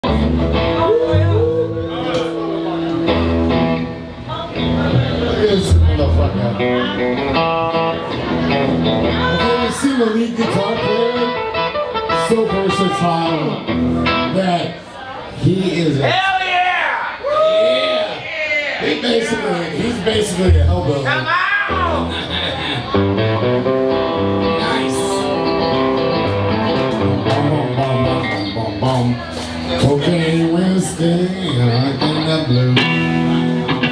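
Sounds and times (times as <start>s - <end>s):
drums: 0.0s - 9.6s, 21.8s - 33.9s
bass line: 0.0s - 9.8s, 20.2s - 33.9s
electric guitars: 0.0s - 14.9s, 20.0s - 33.9s
person singing: 0.6s - 3.5s.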